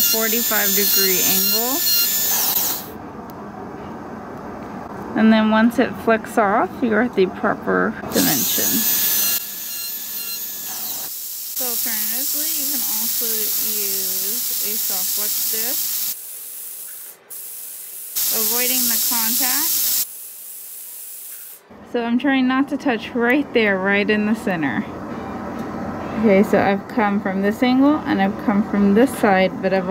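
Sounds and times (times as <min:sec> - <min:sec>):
dental drill whining: 0:00.0 - 0:03.0, 0:08.1 - 0:21.6.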